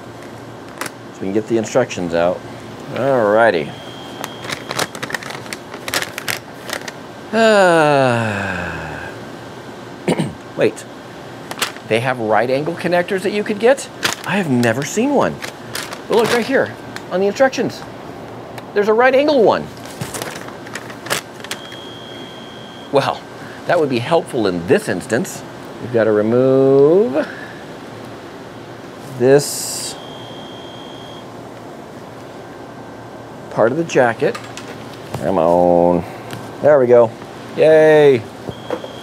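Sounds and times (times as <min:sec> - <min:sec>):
paper crackling and rustling: 0:04.2 - 0:07.0, 0:14.0 - 0:17.1, 0:19.7 - 0:21.6.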